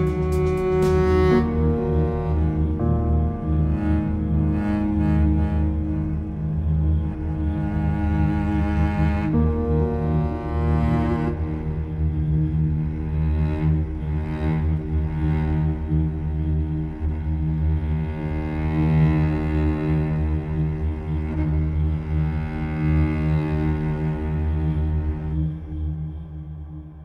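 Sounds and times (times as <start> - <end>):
low bass pulse: 0.0 - 16.8
bowed cello tones: 0.0 - 27.0.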